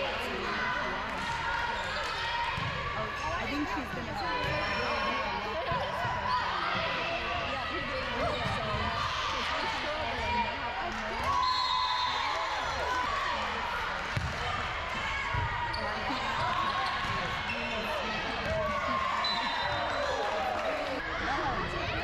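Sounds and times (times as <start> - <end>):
voices calling in a hall: 0.0 - 22.0
sneakers squeaking: 3.5 - 5.1, 15.6 - 20.2
volleyball thumps: 14.0 - 14.6.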